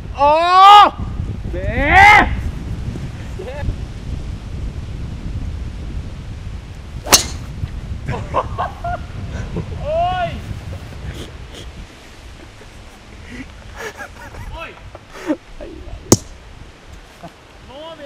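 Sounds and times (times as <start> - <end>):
wind rumble on microphone: 0.0 - 18.0
golf club striking ball: 7.0 - 7.6, 16.1 - 16.4.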